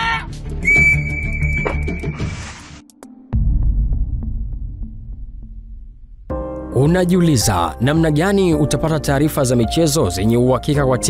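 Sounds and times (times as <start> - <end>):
background music: 0.0 - 11.0
whistle blast: 0.6 - 2.4.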